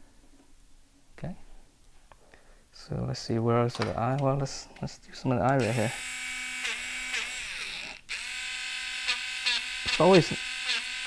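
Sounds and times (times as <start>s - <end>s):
electric eraser motor whirring: 5.6s - 11.0s.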